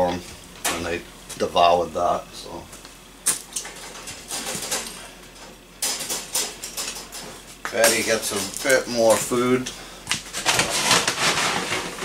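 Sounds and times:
wire cages rattling: 3.3 - 9.2.

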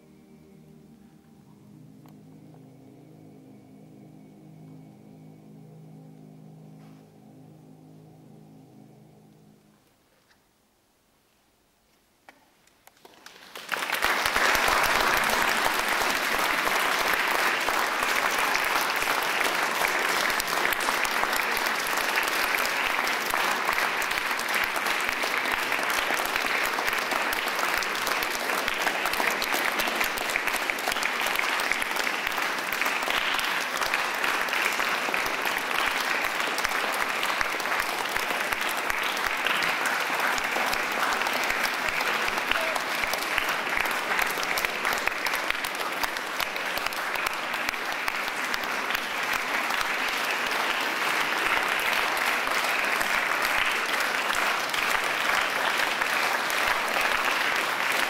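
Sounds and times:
audience applauding: 13.0 - 58.0.

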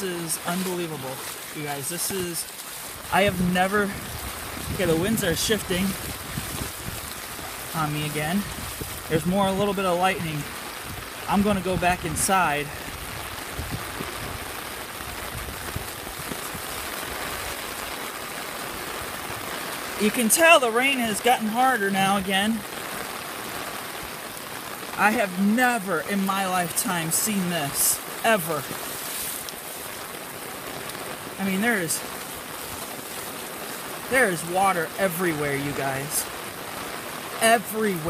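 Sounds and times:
heavy rain on a wet street: 0.0 - 38.0.

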